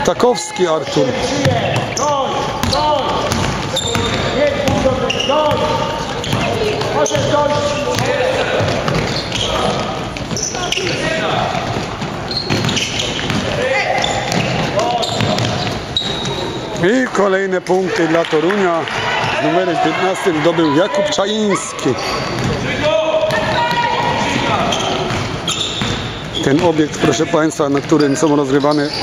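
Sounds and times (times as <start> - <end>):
people shouting and calling out: 0.0 - 11.7, 13.4 - 15.6, 16.2 - 25.1
basketball bouncing on floor: 2.6 - 10.5, 11.5 - 13.6, 14.2 - 16.3, 22.4 - 22.6, 23.3 - 26.4.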